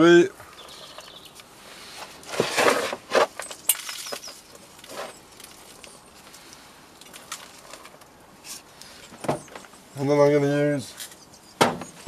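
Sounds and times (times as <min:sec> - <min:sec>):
compost rustling and scraping: 0:00.4 - 0:12.0.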